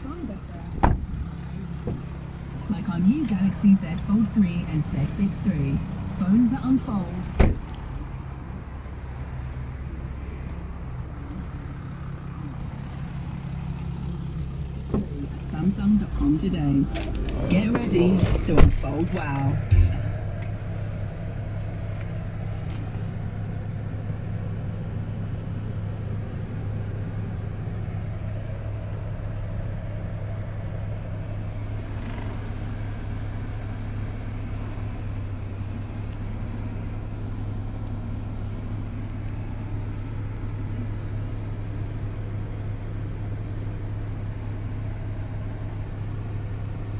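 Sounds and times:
car engine idling: 0:00.0 - 0:46.9.

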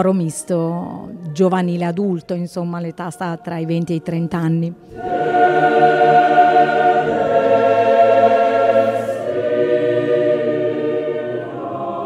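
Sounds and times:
choir singing a cappella: 0:02.8 - 0:12.0.

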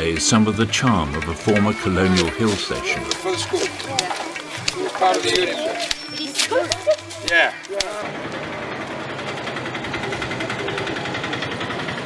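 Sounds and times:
small motor running: 0:01.7 - 0:12.0.

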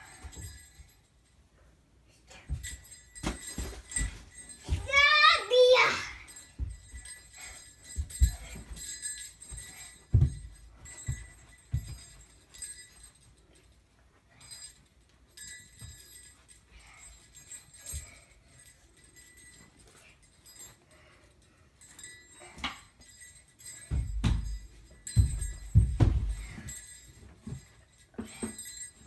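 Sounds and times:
faint jingling: 0:00.0 - 0:29.0
child's feet thumping on carpet: 0:09.6 - 0:12.2, 0:23.9 - 0:26.8.

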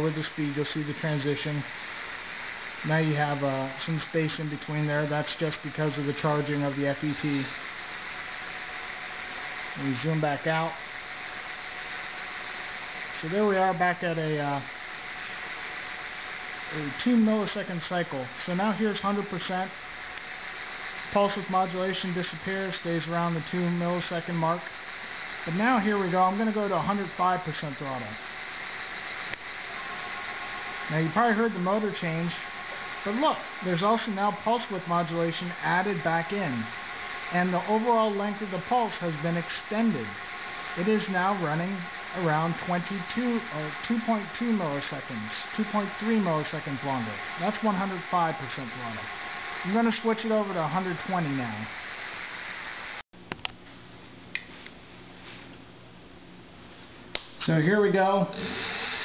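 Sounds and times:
electric hub motor spinning: 0:00.0 - 0:53.0, 0:58.2 - 0:59.0
running hiss: 0:00.0 - 0:53.0, 0:56.8 - 0:59.0
faint steady hum: 0:00.0 - 0:59.0
faint steady whine: 0:00.0 - 0:59.0
click: 0:53.3 - 0:53.6.

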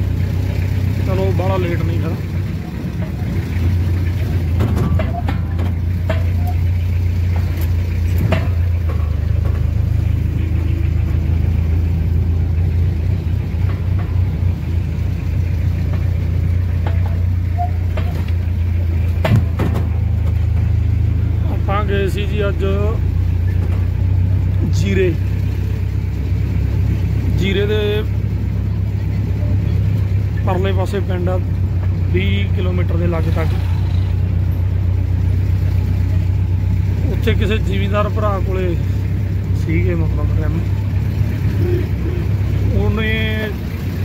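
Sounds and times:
vehicle engine humming: 0:00.0 - 0:44.0
knocks and rattles: 0:01.8 - 0:21.4, 0:23.2 - 0:24.5.

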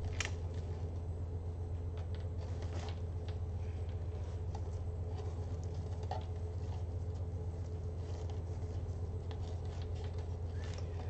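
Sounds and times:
steady low hum: 0:00.0 - 0:11.0
fabric and ribbons rustling: 0:02.0 - 0:11.0.

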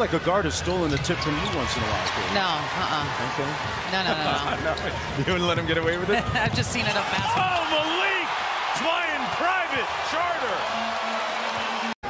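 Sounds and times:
crowd cheering: 0:00.2 - 0:12.0.

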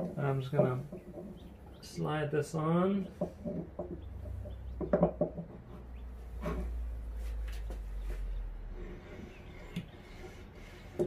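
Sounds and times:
metal gliding on metal rumble: 0:00.0 - 0:11.0.

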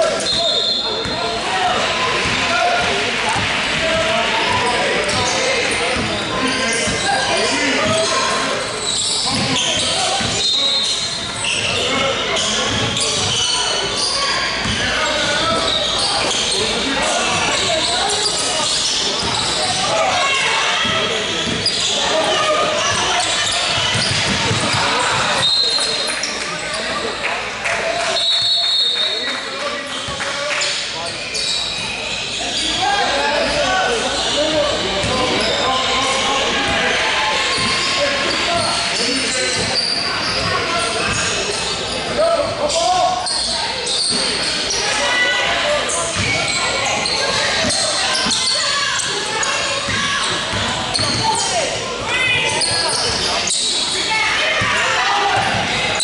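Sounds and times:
people shouting and talking: 0:00.0 - 0:56.0
referee whistle blasts: 0:00.2 - 0:01.0
basketball bouncing on wooden floor: 0:23.8 - 0:25.3.

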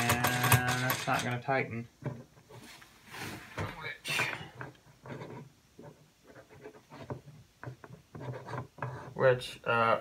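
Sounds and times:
faint metal rubbing and clicks: 0:04.5 - 0:09.4.

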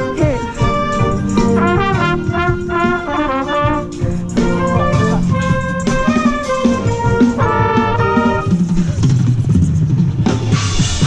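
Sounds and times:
low marching drum hits: 0:00.0 - 0:11.0.

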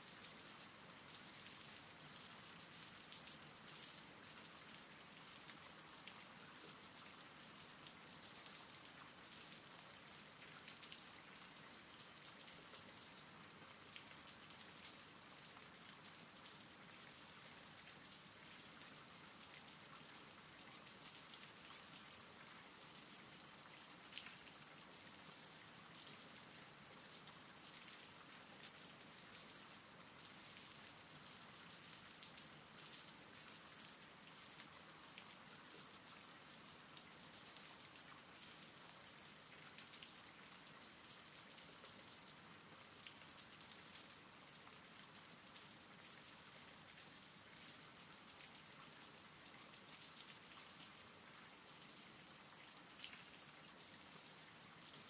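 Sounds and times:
steady rainfall: 0:00.0 - 0:55.0.

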